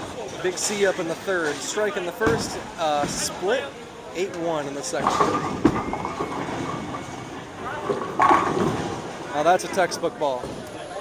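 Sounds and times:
bowling ball rolling: 5.0s - 9.3s
bowling pins crashing: 5.0s - 9.3s.

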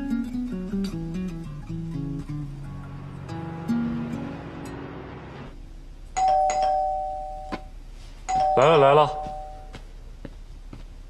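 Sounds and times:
two-tone doorbell chime: 6.2s - 7.7s, 8.3s - 9.8s.

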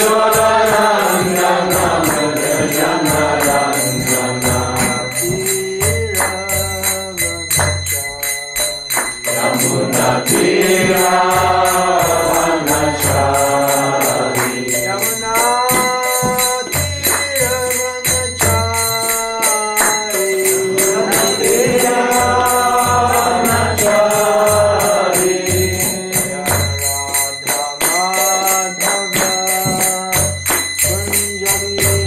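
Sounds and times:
hand cymbals: 0.0s - 32.0s
man singing a chant: 0.0s - 32.0s.

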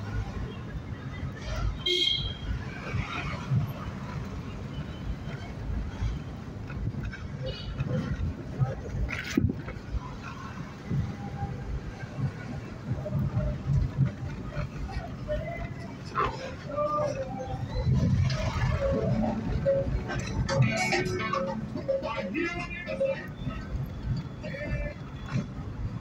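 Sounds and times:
street noise: 0.0s - 26.0s
car rumbling inside: 5.5s - 26.0s
faint voices: 7.0s - 26.0s.

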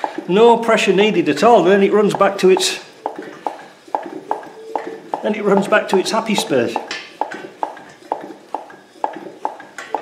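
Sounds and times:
engine knocking turned by hand: 0.0s - 10.0s.

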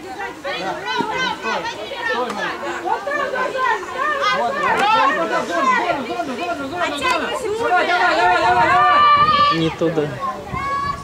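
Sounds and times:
women shouting and calling out: 0.0s - 11.0s.

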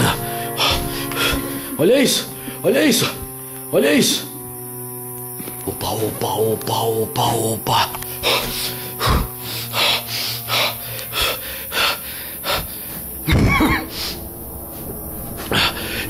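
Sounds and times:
man breathing fast and heavily: 0.0s - 3.3s, 8.0s - 16.0s
background music with held notes: 0.0s - 16.0s.

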